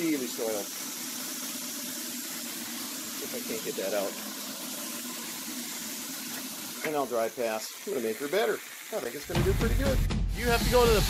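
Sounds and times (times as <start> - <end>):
carpet cleaning wand suction hiss: 0.0 - 9.2, 10.4 - 11.0.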